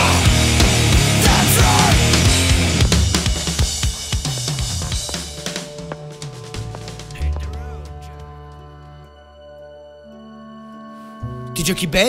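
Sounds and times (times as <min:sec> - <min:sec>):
drum and cymbal strikes: 0:00.0 - 0:07.1
metal music: 0:00.0 - 0:08.7.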